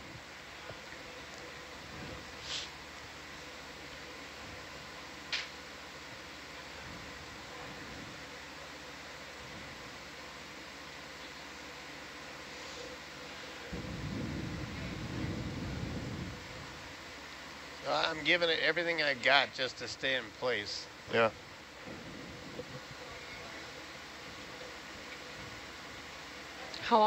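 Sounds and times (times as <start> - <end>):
ventilation hum: 0.0 - 27.0
low rumble: 13.7 - 17.0.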